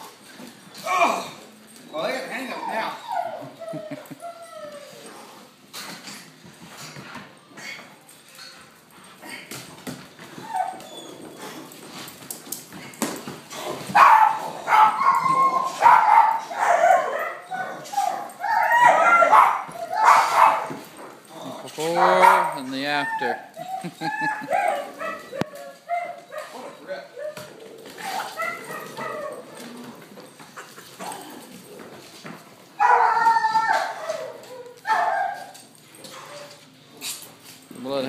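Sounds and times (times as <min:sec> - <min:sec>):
puppies whining: 0:00.9 - 0:05.5, 0:09.2 - 0:12.2, 0:13.9 - 0:37.6
puppies barking and yipping: 0:10.2 - 0:12.0, 0:13.9 - 0:21.0, 0:21.7 - 0:32.0, 0:32.6 - 0:36.6.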